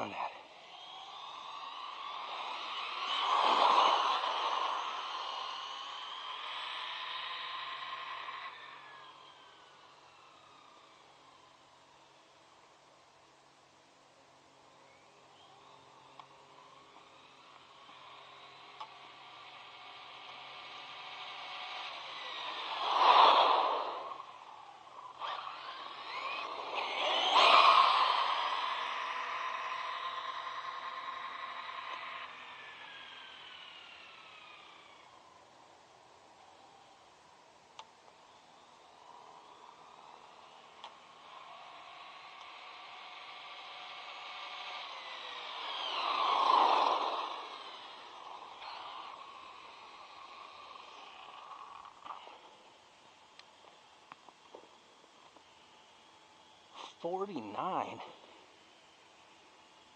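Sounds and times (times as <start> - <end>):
rc truck electric motor whining: 0.0 - 59.9.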